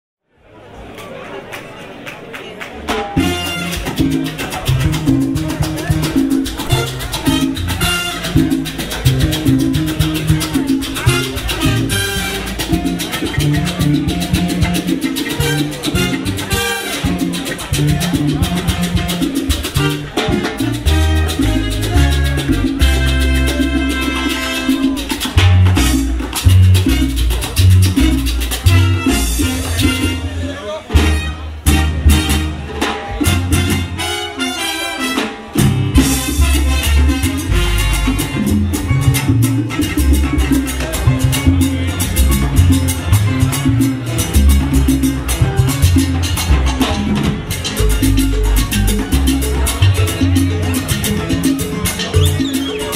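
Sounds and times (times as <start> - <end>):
audience chatter: 0.2 - 52.9
live salsa band playing: 0.7 - 52.9
steady percussion: 2.9 - 52.9
bouncing bass line: 3.2 - 34.1, 35.5 - 52.9.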